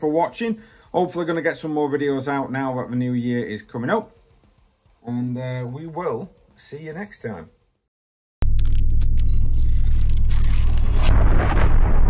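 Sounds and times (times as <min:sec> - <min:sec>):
crackling: 0:08.4 - 0:12.0
deep rumble: 0:08.4 - 0:12.0
sudden hit: 0:08.4 - 0:12.0.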